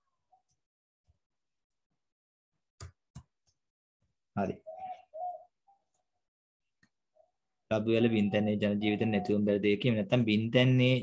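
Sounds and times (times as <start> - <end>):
bird cooing: 4.5 - 6.1, 8.0 - 9.5.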